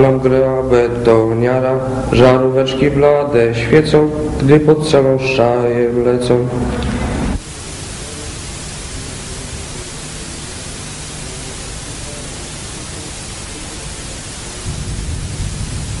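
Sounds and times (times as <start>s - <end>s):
recording hiss: 0.0s - 16.0s.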